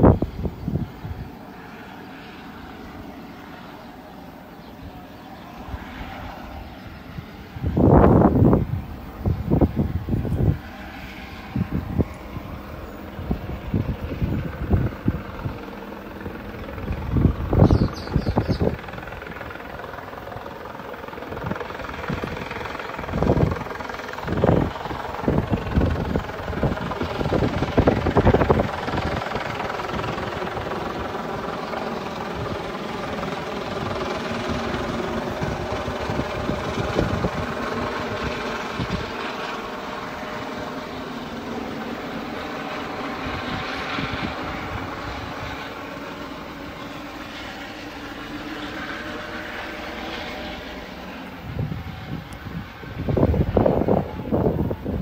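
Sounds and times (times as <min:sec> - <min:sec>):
engine drone: 0:00.0 - 0:55.0.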